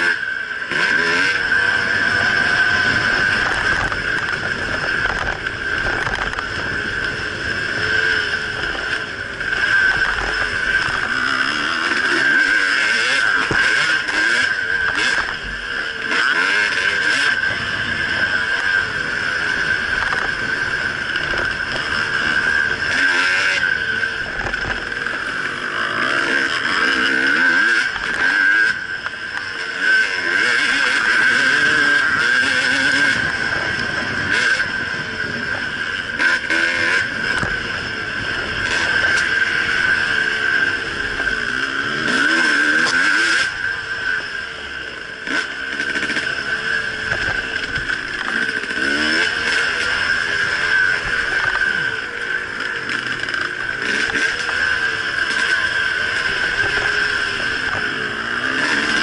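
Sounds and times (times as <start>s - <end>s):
dirt bike engine revving: 0.0s - 59.0s
second dirt bike following: 0.0s - 59.0s.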